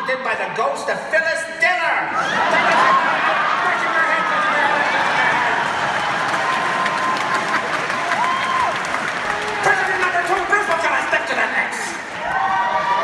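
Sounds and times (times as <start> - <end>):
audience laughing and applauding: 2.2 - 13.0.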